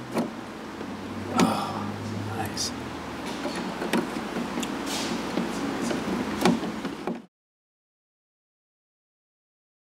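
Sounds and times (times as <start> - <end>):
steady background noise: 0.0 - 7.3
sharp knocks and clicks: 3.2 - 7.3.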